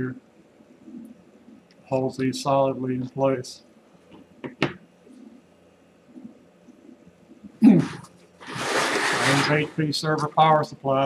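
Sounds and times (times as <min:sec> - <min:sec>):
man humming low in throat: 0:07.6 - 0:08.0.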